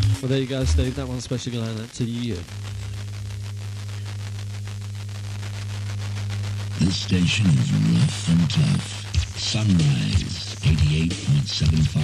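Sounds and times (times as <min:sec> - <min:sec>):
low mains hum: 0:00.0 - 0:12.0
radio hiss: 0:00.0 - 0:12.0
static crackle: 0:00.0 - 0:12.0.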